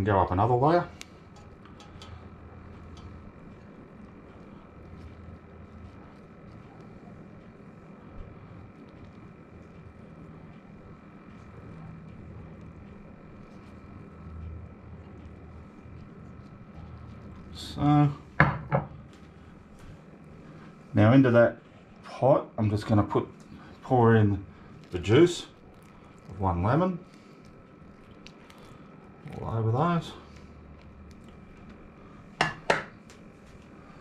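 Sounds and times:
low background hum: 0.0s - 34.0s
soft handling sounds: 0.4s - 18.4s.

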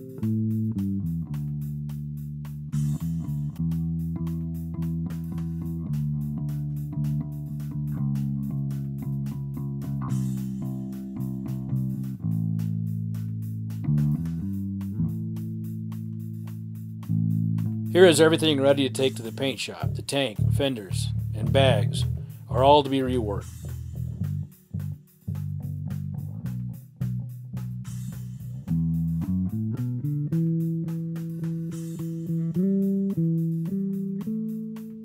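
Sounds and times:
bass guitar plucked notes: 0.0s - 35.0s.

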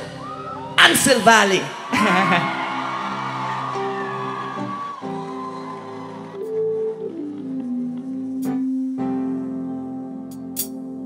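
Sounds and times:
man laughing: 1.9s - 2.6s
live band keyboard chords: 2.5s - 11.0s.

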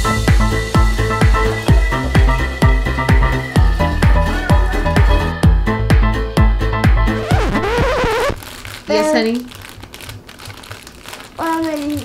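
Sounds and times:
background music: 0.0s - 8.4s
plastic packet crinkling: 7.8s - 12.0s.

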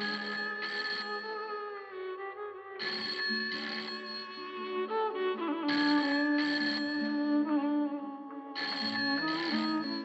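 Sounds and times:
telephone bell ringing: 0.0s - 1.7s, 2.8s - 4.8s, 5.7s - 7.5s, 8.6s - 10.0s.

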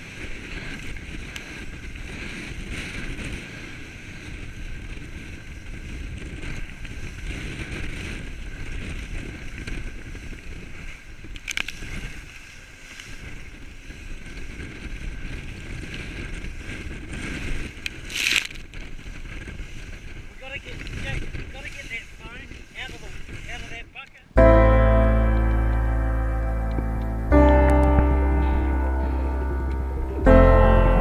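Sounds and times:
wind buffeting microphone: 0.0s - 31.0s
powerboat motor: 24.4s - 31.0s.

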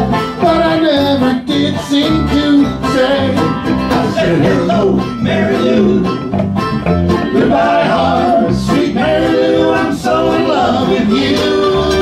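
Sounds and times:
acoustic guitar: 0.0s - 12.0s
dobro: 0.0s - 12.0s
electric bass: 0.0s - 12.0s
harmony singing: 0.5s - 6.4s, 7.1s - 12.0s.

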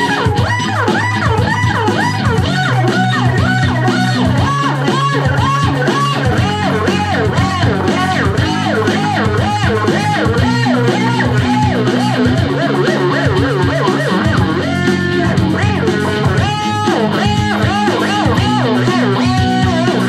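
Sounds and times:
held bass notes: 0.0s - 20.0s
lead guitar with pitch bends: 0.0s - 20.0s.

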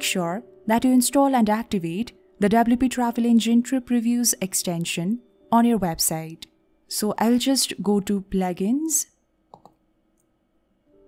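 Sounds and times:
computer mouse clicking: 9.5s - 10.3s.

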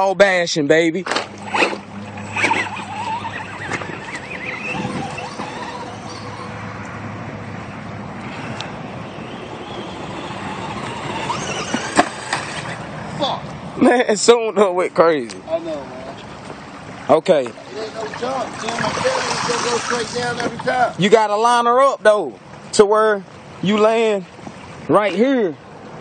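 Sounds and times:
toy truck motor whining: 1.2s - 7.0s, 8.2s - 12.9s, 17.8s - 20.5s.

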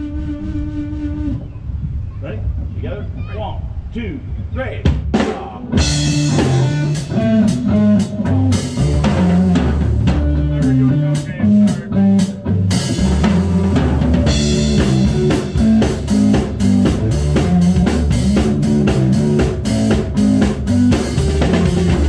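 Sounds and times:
walking bass line: 0.0s - 22.0s
drum kit: 4.7s - 22.0s
electric guitar: 5.7s - 22.0s.

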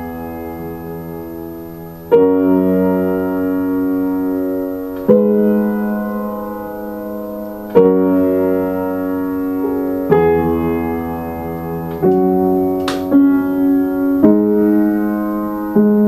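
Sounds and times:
upright piano slow chords: 0.0s - 16.0s.

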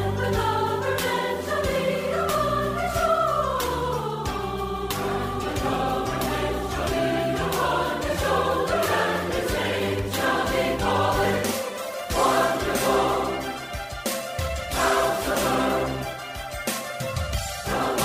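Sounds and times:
choir singing: 0.0s - 18.0s.

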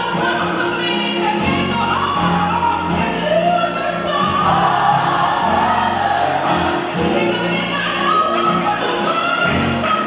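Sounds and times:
gospel choir singing: 0.0s - 10.0s.

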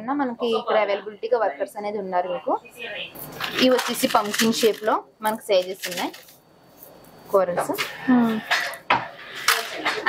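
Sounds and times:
beads clicking and clattering: 3.6s - 6.4s.

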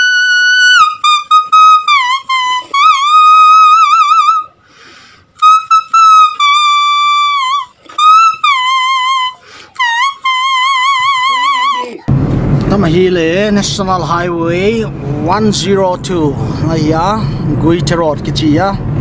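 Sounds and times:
leaf whistling tune: 0.0s - 4.6s, 5.4s - 12.0s.

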